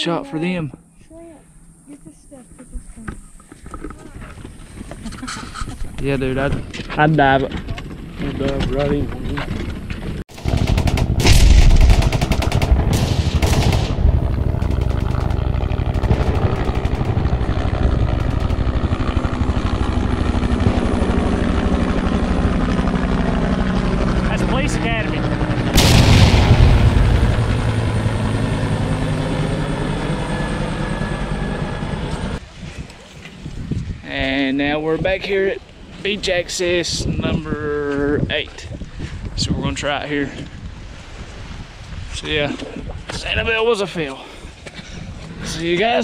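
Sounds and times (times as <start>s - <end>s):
helicopter rotor chop: 9.7s - 32.4s.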